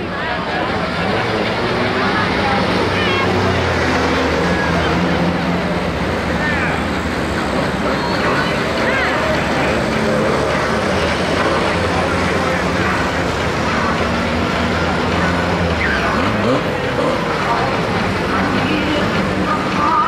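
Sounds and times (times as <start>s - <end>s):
car engines running: 0.0s - 20.0s
din of voices: 0.0s - 20.0s.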